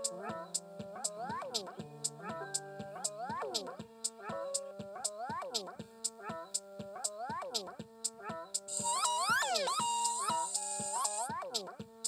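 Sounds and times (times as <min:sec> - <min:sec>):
synthesizer tones over a beat: 0:00.0 - 0:11.9.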